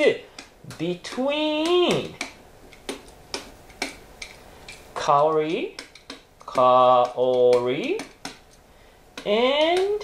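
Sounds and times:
pen tip clicking on whiteboard: 0.4s - 8.5s.

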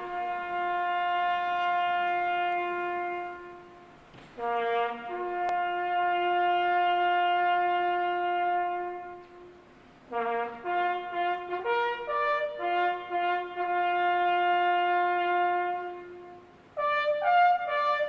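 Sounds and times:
solo brass bugle melody: 0.0s - 18.0s.

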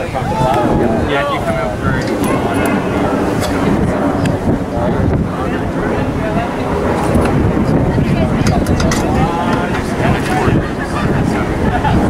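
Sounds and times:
faint voices: 0.0s - 12.0s
wind buffeting microphone: 0.0s - 12.0s.

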